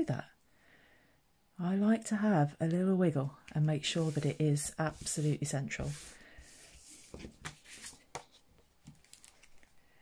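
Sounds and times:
paper rubbing on table: 3.9s - 8.0s.

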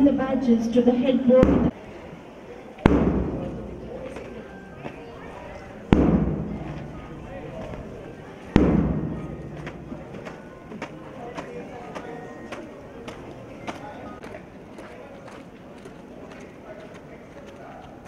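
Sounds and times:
loud thud with ringing tail: 2.9s - 3.8s, 5.9s - 7.8s, 8.6s - 10.2s.

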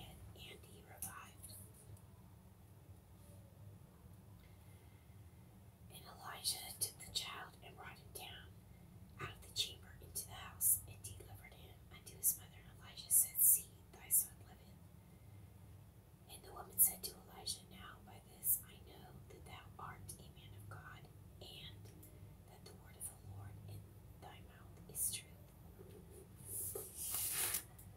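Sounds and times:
person whispering: 0.0s - 1.7s, 5.9s - 8.5s, 9.2s - 14.7s, 16.3s - 21.9s, 22.5s - 25.4s.

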